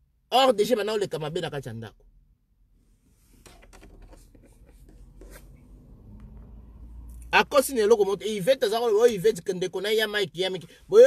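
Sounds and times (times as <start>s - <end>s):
faint scratching and rubbing: 2.8s - 5.8s.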